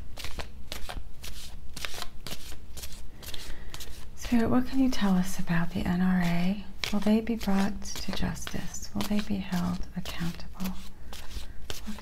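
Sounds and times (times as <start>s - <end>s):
cards being shuffled: 0.0s - 4.4s, 6.2s - 12.0s.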